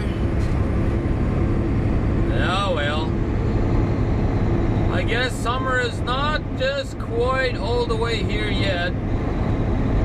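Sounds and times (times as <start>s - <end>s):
truck diesel engine drone: 0.0s - 10.0s.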